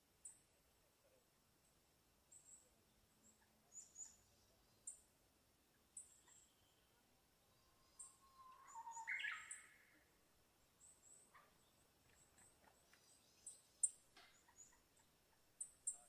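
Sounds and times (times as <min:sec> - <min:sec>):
faint high chirping: 0:05.7 - 0:10.1, 0:10.8 - 0:16.0.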